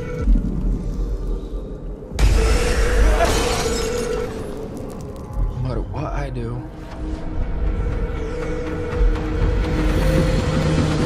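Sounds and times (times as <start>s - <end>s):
held musical drone: 6.8s - 11.0s.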